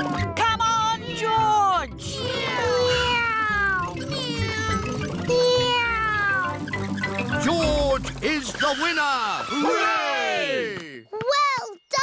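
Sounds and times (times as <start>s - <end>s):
background music: 0.0s - 11.2s
cartoon voices cheering: 9.3s - 10.9s.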